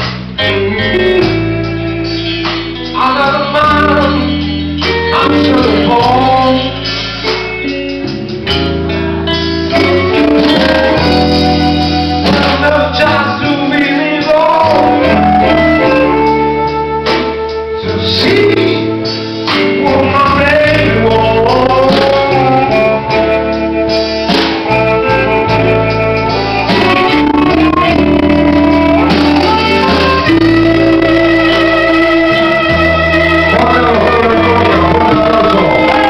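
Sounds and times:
live blues band playing: 0.0 - 36.0.

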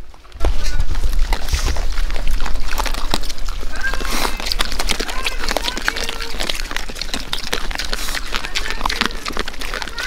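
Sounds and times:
pigs crunching corn: 0.0 - 10.0.

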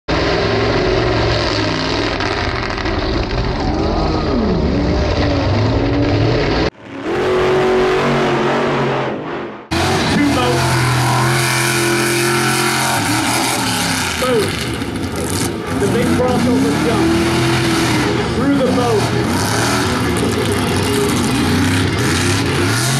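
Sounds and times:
truck engine revving: 0.1 - 22.9.

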